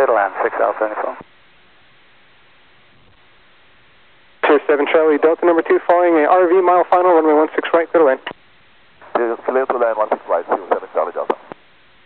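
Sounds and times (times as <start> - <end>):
radio voice: 0.0 - 1.2, 4.4 - 8.3, 9.0 - 11.6
radio receiver hiss: 0.0 - 1.3, 9.0 - 11.7.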